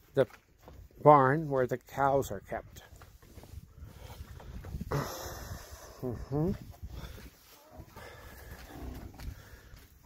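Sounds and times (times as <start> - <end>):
microphone handling rumble: 3.0 - 9.4
cattle lowing: 3.6 - 10.0.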